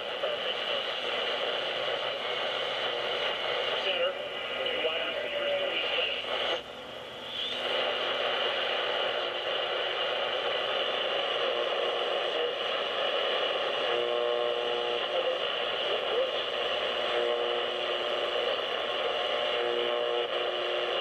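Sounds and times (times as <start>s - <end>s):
faint radio voice: 0.0s - 6.6s, 14.9s - 17.3s
radio static hiss: 0.0s - 21.0s
radio whistle tones: 7.3s - 21.0s.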